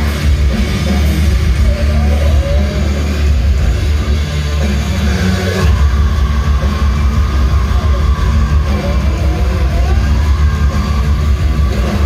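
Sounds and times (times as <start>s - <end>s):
loud live rock music: 0.0s - 12.0s.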